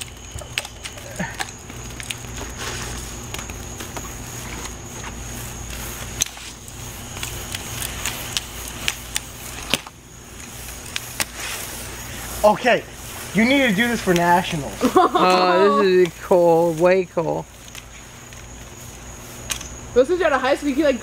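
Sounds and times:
sharp crackles and pops: 0.0s - 21.0s
sparklers fizzing: 0.0s - 21.0s.

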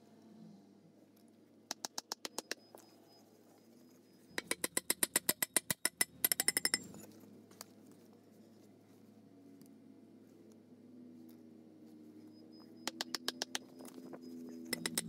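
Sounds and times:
metallic taps on steel pipe: 4.4s - 6.9s, 14.7s - 15.0s.

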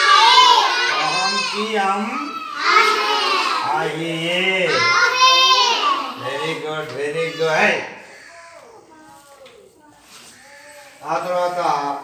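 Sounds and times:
faint children's voices: 0.0s - 12.0s.

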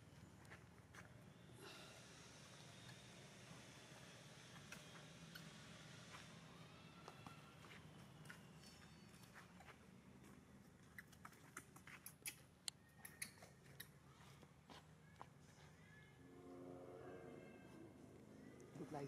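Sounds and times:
faint steady background hum: 0.0s - 19.0s.

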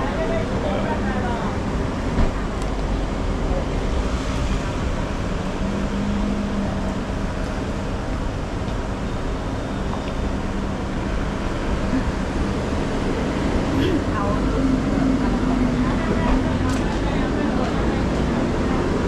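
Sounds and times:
traffic rumble: 0.0s - 19.0s.

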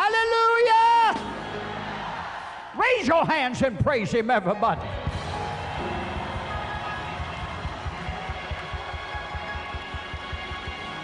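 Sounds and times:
church music with steady beat: 4.0s - 11.0s.

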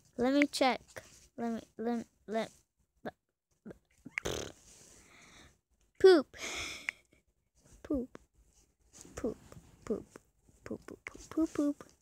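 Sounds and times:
child's breathy noise: 6.4s - 6.9s.

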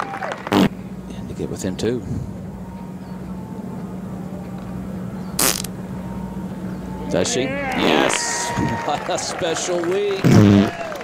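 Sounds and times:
steady low hum: 0.0s - 11.0s
short sharp fart: 0.5s - 0.7s, 5.4s - 5.7s, 10.2s - 10.8s.

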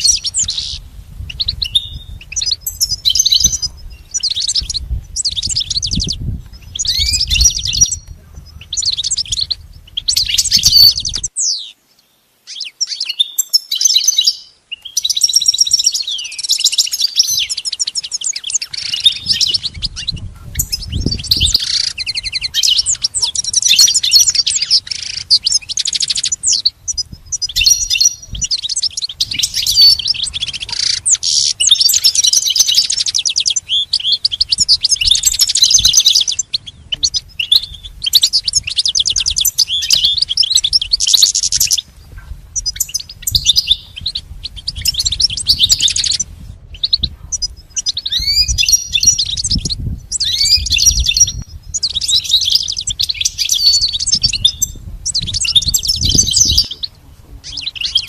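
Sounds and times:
goldfinch twittering song: 0.0s - 58.0s.

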